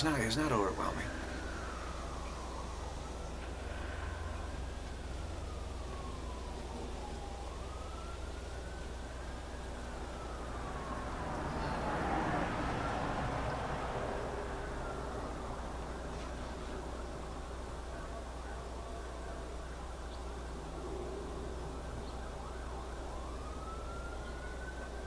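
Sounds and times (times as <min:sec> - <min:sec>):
distant sirens wailing: 0:00.0 - 0:25.0
steady low hum: 0:00.0 - 0:25.0.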